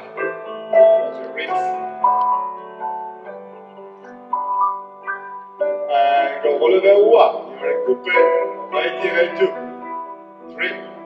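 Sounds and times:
piano chords: 0.0s - 11.0s.

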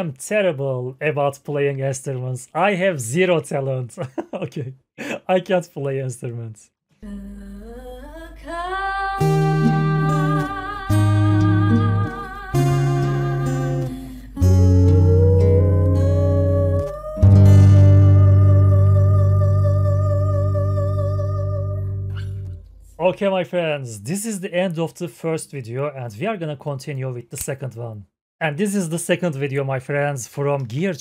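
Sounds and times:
woman singing with vibrato: 7.0s - 22.2s.

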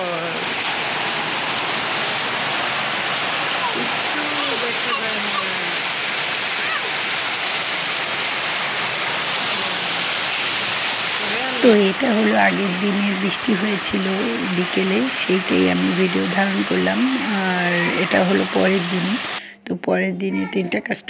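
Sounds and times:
heavy rain pouring: 0.0s - 19.5s.

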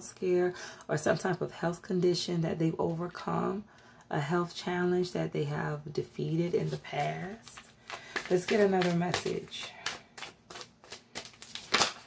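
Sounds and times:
cards being shuffled: 6.6s - 12.0s.

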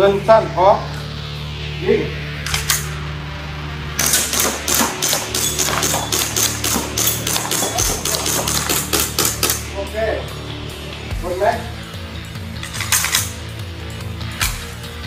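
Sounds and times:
electric airsoft gun firing: 2.4s - 3.0s, 4.0s - 9.8s.

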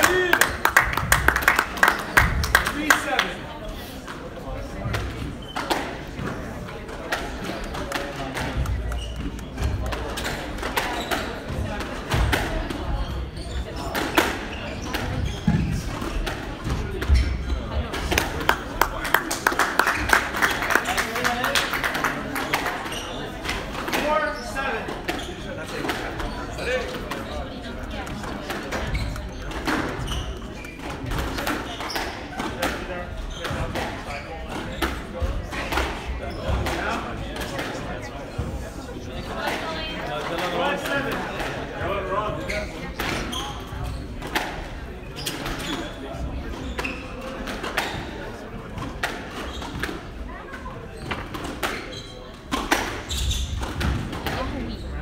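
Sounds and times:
murmur of spectators talking: 0.0s - 55.0s.

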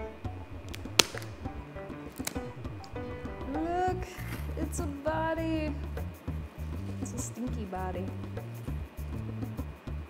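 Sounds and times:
background music: 0.0s - 10.0s
pruning shears snipping: 0.5s - 3.0s, 4.0s - 4.7s
pruning shears clicks: 0.6s - 1.5s, 2.1s - 3.0s.

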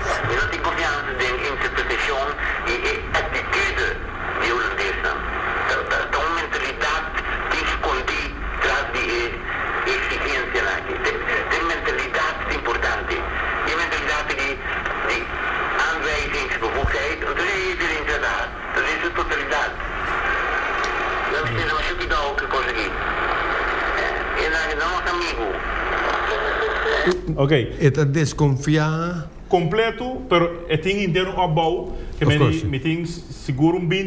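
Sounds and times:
person talking through phone: 21.3s - 23.0s.

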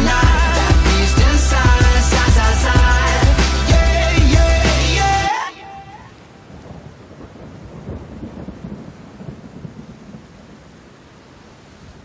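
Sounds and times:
heavy rain: 0.0s - 12.0s
thunder rumble: 6.4s - 10.9s.

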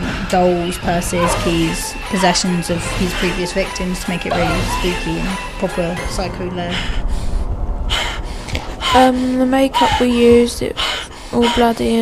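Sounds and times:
low rumble: 0.0s - 11.4s.

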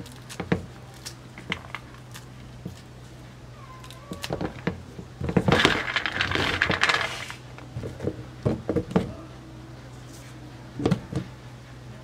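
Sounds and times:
maize kernels clattering onto metal plate: 5.5s - 7.4s.

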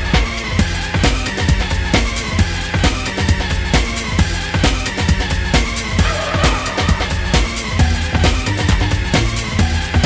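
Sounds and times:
house dance music: 5.2s - 10.0s.

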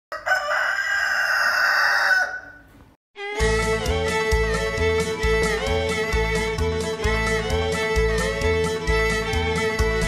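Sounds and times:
rooster crowing: 0.1s - 2.7s
music: 3.2s - 10.0s.

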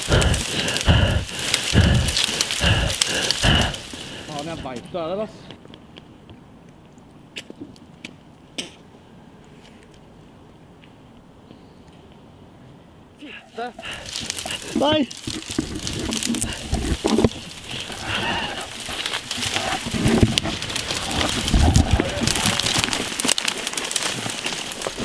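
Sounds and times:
loud rustling and scuffling: 0.0s - 5.0s, 13.2s - 25.0s.

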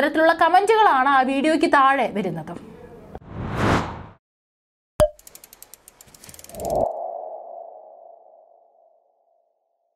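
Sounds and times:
whoosh: 3.2s - 4.2s
quick run of ticks: 5.2s - 6.9s.

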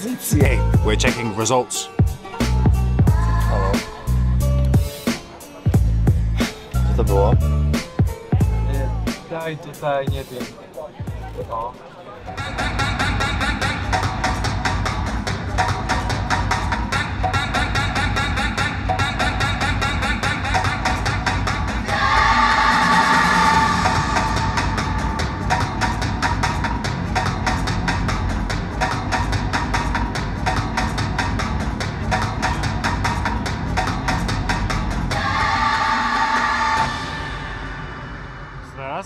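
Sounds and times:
music with fast steady beat: 0.0s - 11.6s, 12.3s - 38.5s.

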